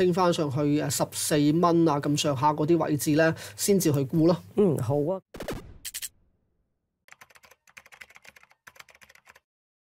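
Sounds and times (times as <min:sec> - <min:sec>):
computer keyboard key clicks: 0:07.1 - 0:09.4.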